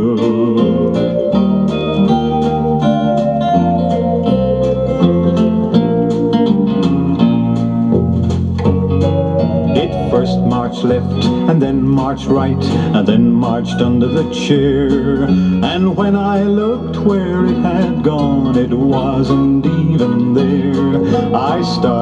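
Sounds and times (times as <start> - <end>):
folk pop instrumental on vinyl: 0.0 - 22.0.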